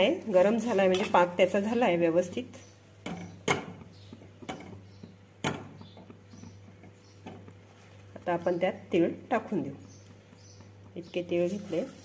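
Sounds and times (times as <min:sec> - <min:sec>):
spatula knocking and scraping metal pan: 0:03.0 - 0:07.5.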